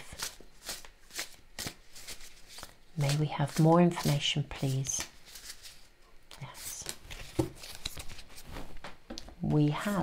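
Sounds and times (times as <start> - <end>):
cards being shuffled: 0.1 - 9.2.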